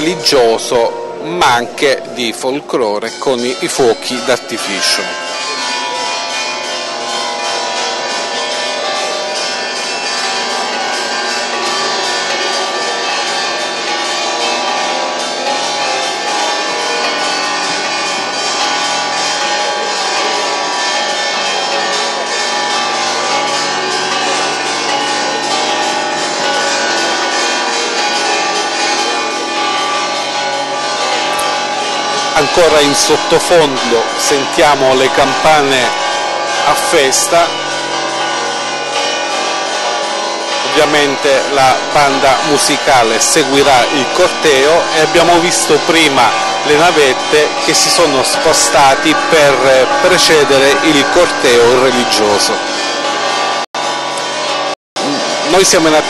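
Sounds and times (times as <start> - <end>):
church bells ringing: 0.0 - 56.0.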